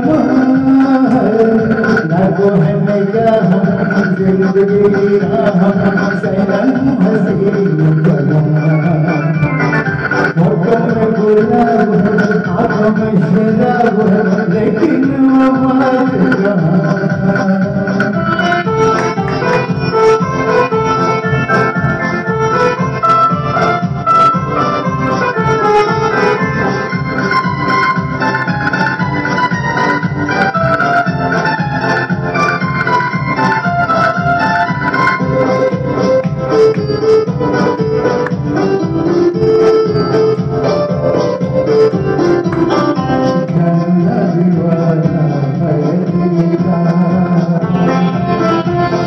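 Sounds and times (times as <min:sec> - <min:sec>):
steady beat: 0:00.0 - 0:49.0
sustained organ-like keyboard music: 0:00.0 - 0:49.0.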